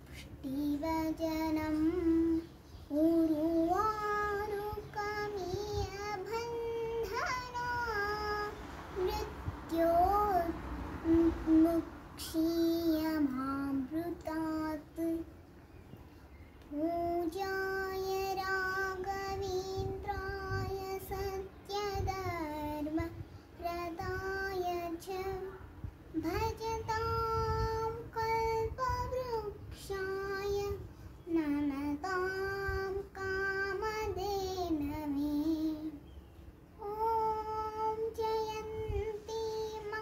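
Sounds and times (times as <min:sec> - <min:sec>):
child chanting: 0:00.0 - 0:15.3, 0:16.6 - 0:36.0, 0:36.8 - 0:40.0.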